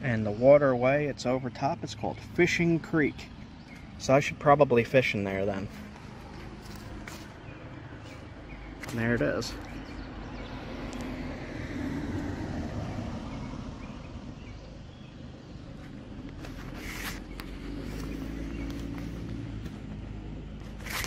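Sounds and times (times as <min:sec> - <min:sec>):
car passing by: 0:09.7 - 0:14.6, 0:15.7 - 0:21.0.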